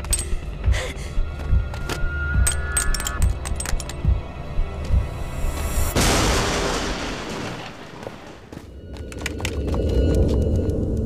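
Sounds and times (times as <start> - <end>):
explosion boom: 6.0 - 8.3.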